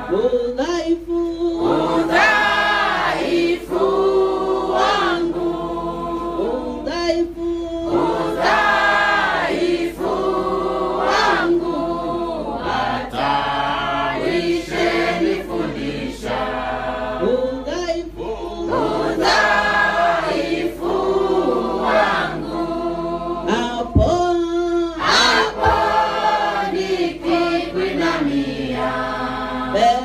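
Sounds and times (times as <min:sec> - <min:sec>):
congregation singing: 0:00.0 - 0:00.5, 0:01.5 - 0:07.0, 0:07.6 - 0:24.3, 0:24.9 - 0:30.0.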